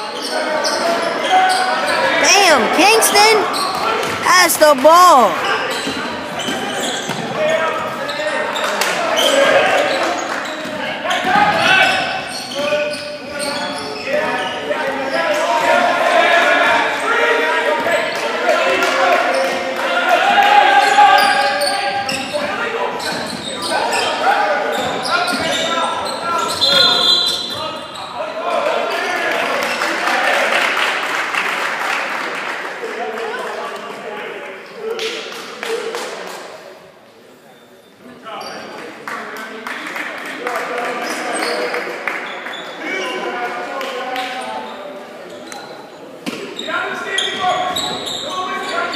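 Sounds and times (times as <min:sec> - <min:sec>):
people talking and calling out: 0:02.0 - 0:05.6.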